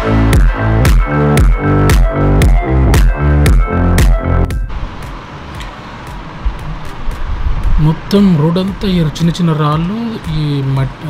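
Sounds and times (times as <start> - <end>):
wind and road rumble: 4.5 - 11.0.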